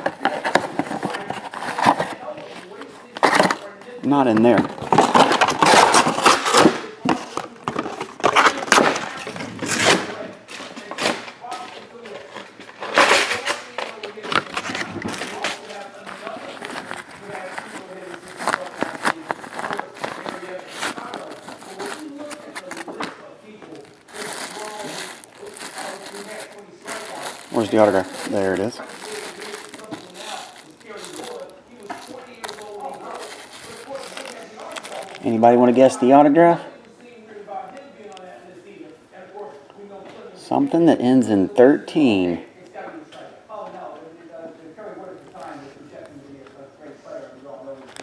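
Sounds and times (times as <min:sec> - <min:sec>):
plastic bag crinkling: 0:12.2 - 0:36.1.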